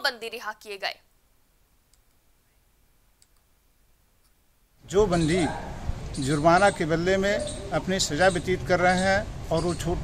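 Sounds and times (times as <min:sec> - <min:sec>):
faint clicks: 0:01.9 - 0:02.2, 0:03.2 - 0:03.5
man speaking: 0:04.8 - 0:10.0.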